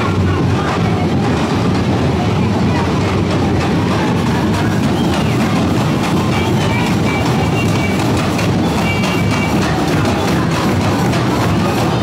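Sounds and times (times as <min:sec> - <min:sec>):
heavy low rumble: 0:00.0 - 0:08.8
crowd voices: 0:00.0 - 0:12.0.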